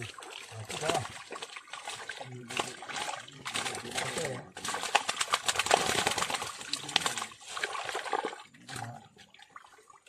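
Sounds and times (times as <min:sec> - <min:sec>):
fish thrashing in water: 0:00.0 - 0:10.0.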